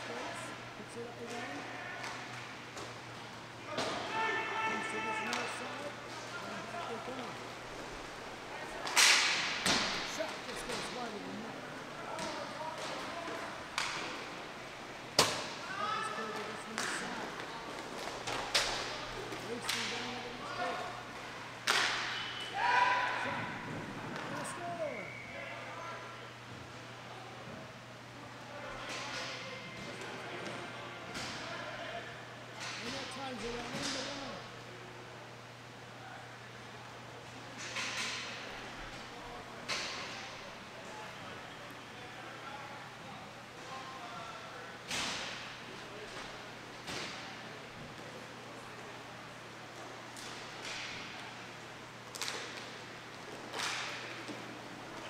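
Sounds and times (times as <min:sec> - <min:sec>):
players shouting: 0:03.6 - 0:07.3, 0:22.4 - 0:26.0.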